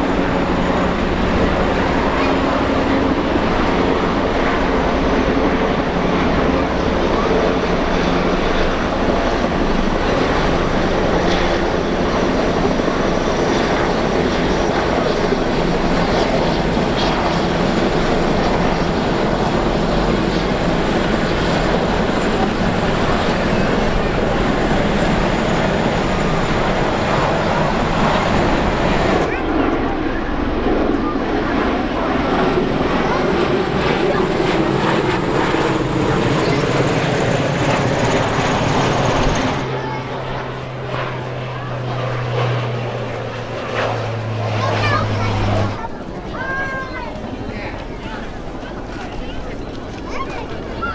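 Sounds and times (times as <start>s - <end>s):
helicopters flying past: 0.0s - 50.9s.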